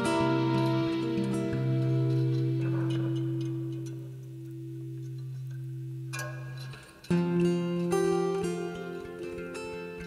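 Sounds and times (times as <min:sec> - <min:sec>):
acoustic guitar notes ringing: 0:00.0 - 0:10.0.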